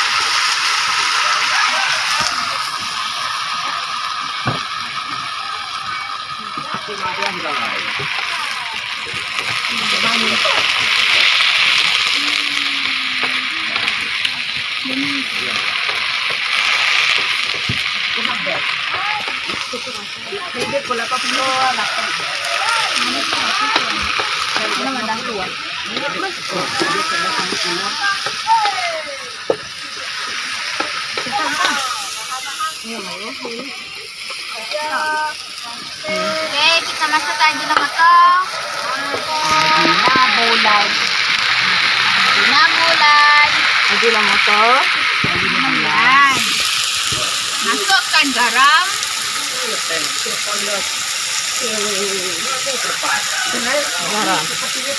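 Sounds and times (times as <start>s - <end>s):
greens sizzling in hot oil: 0.0s - 54.9s
people talking: 0.0s - 54.9s.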